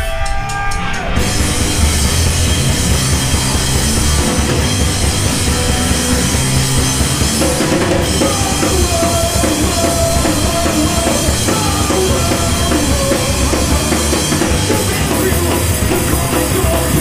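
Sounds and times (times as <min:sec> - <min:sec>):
heavy rock band playing: 0:00.0 - 0:17.0.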